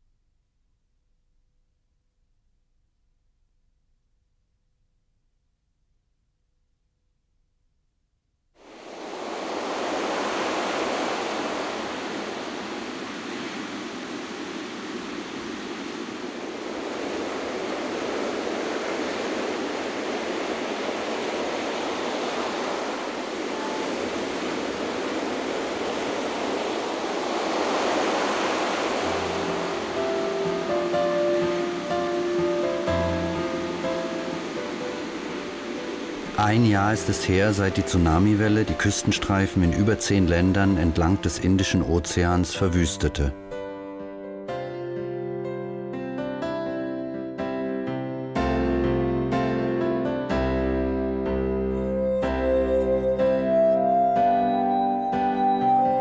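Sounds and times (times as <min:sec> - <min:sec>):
ocean waves washing in: 0:08.6 - 0:43.6
soft music with bass notes: 0:38.6 - 0:56.0.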